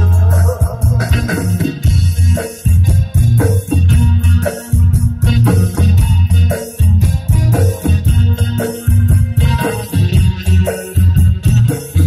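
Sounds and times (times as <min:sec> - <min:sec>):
live band instrumental: 0:00.0 - 0:12.0.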